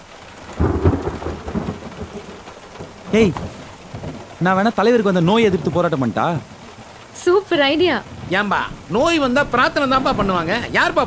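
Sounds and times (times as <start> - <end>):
steady rain: 0.0 - 11.0
thunder rolling: 0.4 - 11.0.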